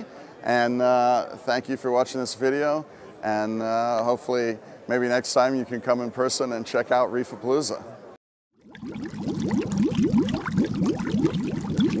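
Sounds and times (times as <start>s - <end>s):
water bubbling and gurgling: 8.6s - 12.0s.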